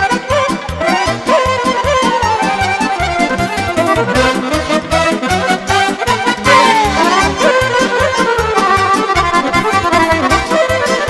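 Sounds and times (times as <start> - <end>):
accordion folk dance tune: 0.0 - 11.0.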